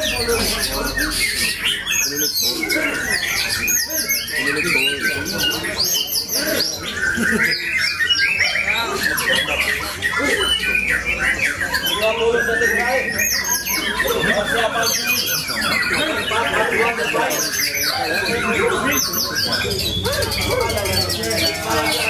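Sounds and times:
caged songbirds chirping and trilling: 0.0s - 22.0s
songbird singing: 0.0s - 22.0s.

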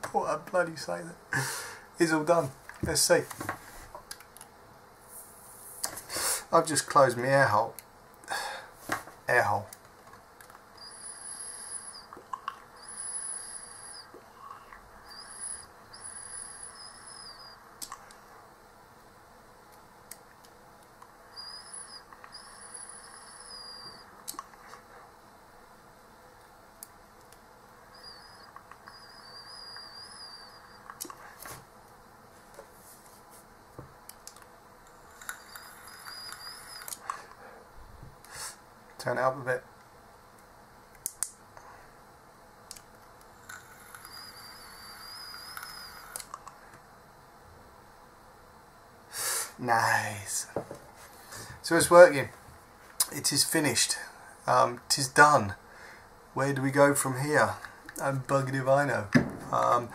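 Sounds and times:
e-cigarette whistle and hiss: 10.8s - 12.2s, 12.8s - 17.6s, 21.3s - 24.1s, 27.9s - 31.6s, 35.0s - 37.2s, 38.3s - 38.6s, 43.5s - 46.3s, 49.1s - 49.6s.

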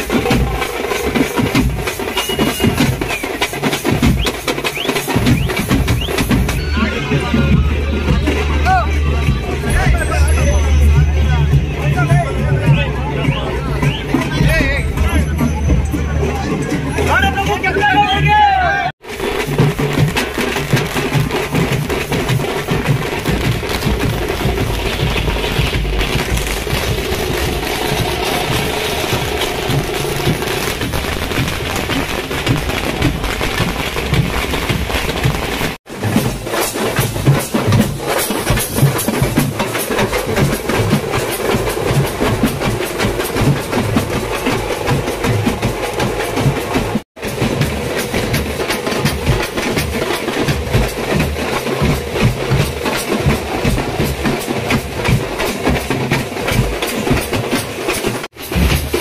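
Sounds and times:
bass and snare drums beating: 0.0s - 59.0s.

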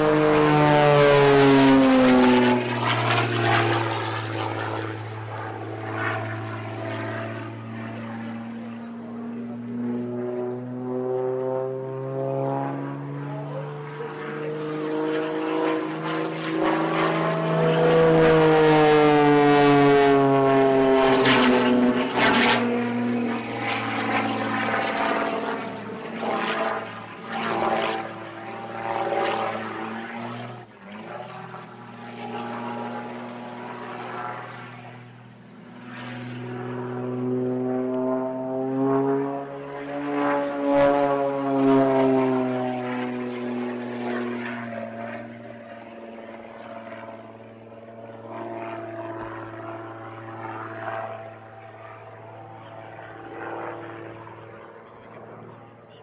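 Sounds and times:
propeller plane engine droning: 0.0s - 56.0s.

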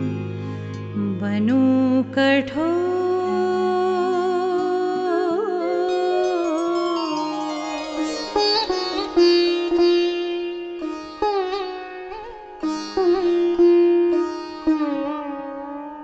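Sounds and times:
plucked string melody: 0.0s - 16.0s.

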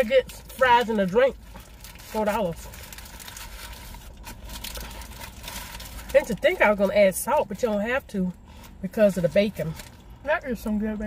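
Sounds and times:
paper wrapper crinkling: 0.0s - 7.0s
low hum inside car: 0.0s - 11.0s.

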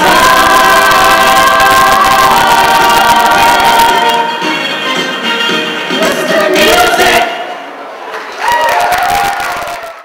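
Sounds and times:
pop choir singing held chord: 0.0s - 4.6s, 5.8s - 7.8s.

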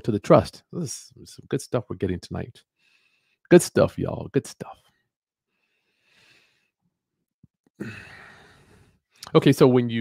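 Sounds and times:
man sighing: 7.8s - 8.7s.

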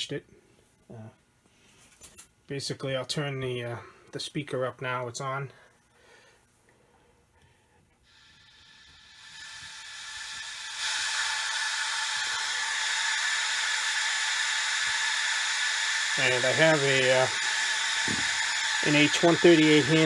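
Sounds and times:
radio static hiss: 8.2s - 20.0s.

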